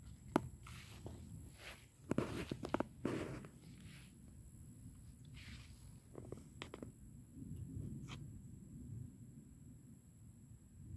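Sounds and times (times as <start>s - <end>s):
footsteps on grass: 0.0s - 6.6s.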